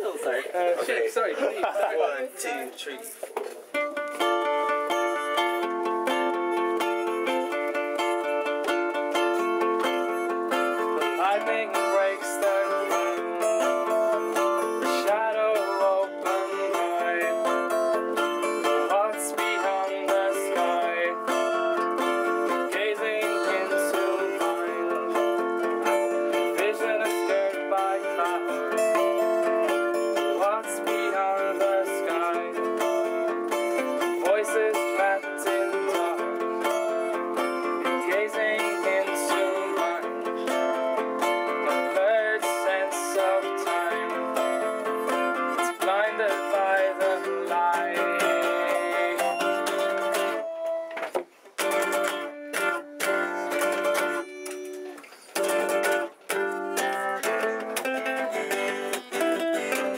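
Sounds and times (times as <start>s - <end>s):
acoustic guitars playing: 3.4s - 59.9s.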